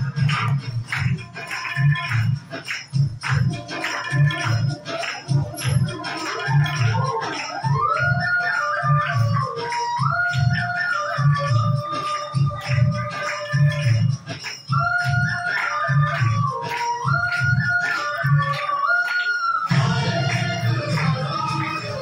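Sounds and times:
dance music with drum beat: 0.0 - 22.0.

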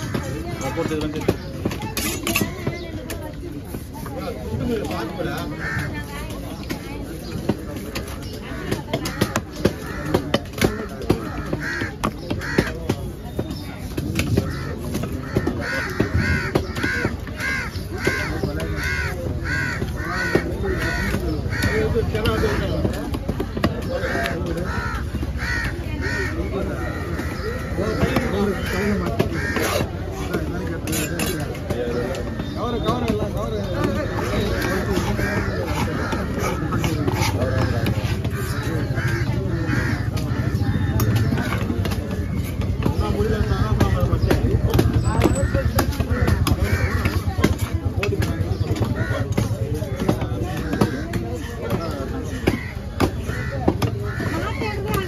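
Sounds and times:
murmur of voices: 0.0 - 55.0
crows cawing: 5.3 - 6.1, 8.5 - 13.1, 14.3 - 23.0, 23.8 - 55.0.

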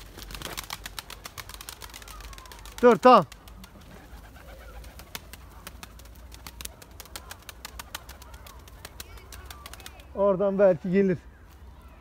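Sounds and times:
faint pigeon calls: 0.0 - 10.2
pigeons clicking: 0.0 - 10.5.

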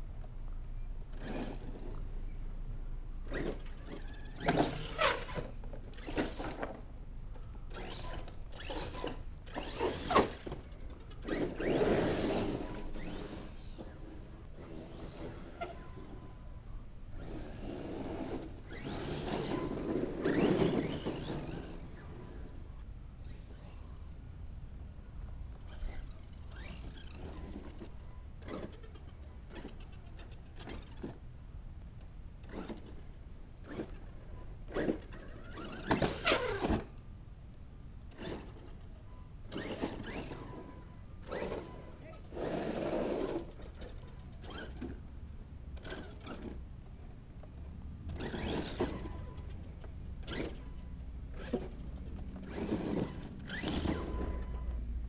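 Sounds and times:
tyres on gravel: 7.7 - 22.6, 48.1 - 54.9
electric motor whining: 17.2 - 22.6.

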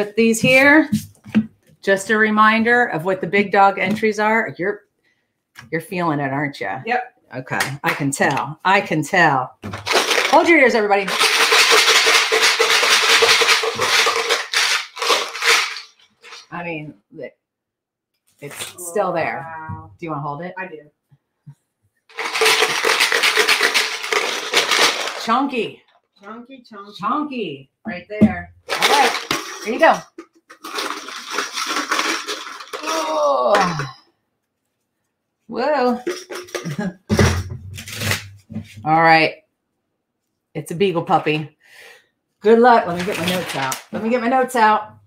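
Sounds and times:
chips rattling in container: 9.7 - 16.5, 22.1 - 25.4, 28.7 - 33.8, 36.0 - 36.8, 42.9 - 44.3.

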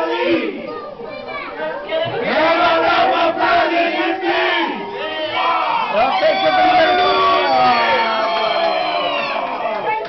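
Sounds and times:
crowd singing along loudly: 2.0 - 5.6.

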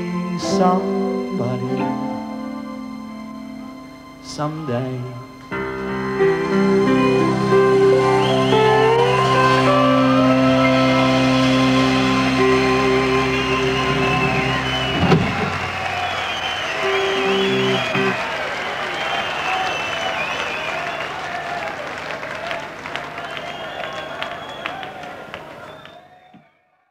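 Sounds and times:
rock band chord on piano and guitar: 5.5 - 18.2
audience cheering and applauding: 5.6 - 26.5.

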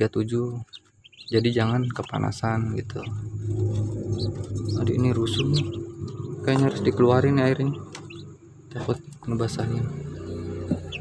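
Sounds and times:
ducklings peeping: 0.0 - 11.0
steady low hum: 0.0 - 11.0.

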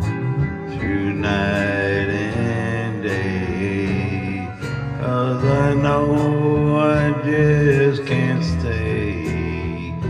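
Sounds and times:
man singing a slow ballad: 0.0 - 10.0
soft backing music: 0.0 - 10.0.

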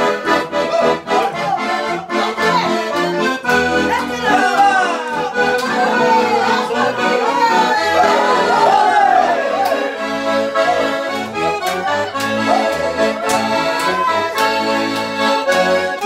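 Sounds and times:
button accordions playing dance tune: 0.0 - 16.0.

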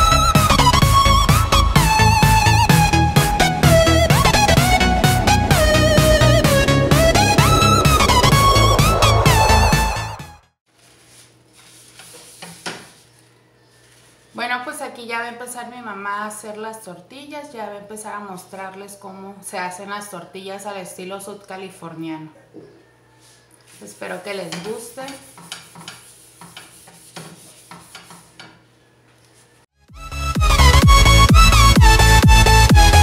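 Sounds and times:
cloth scraping across pan: 10.7 - 14.4.

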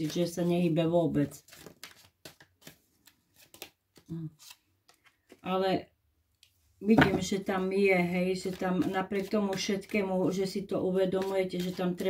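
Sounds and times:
cards clicking and rustling: 1.4 - 5.4, 8.3 - 10.4, 11.1 - 12.0.

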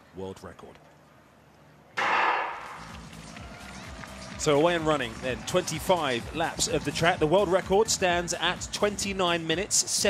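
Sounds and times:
starting gun bang: 2.0 - 3.0.

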